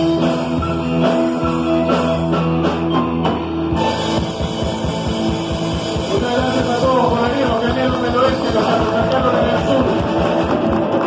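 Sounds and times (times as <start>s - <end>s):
electric guitar: 0.0s - 11.0s.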